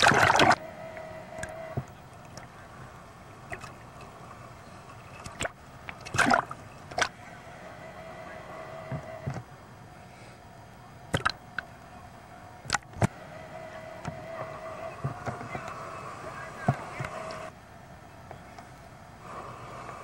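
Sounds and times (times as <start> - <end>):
water sloshing and splashing: 0.0 - 0.6, 3.5 - 3.9, 5.1 - 7.1, 11.1 - 11.4
faint steady tone: 0.0 - 20.0.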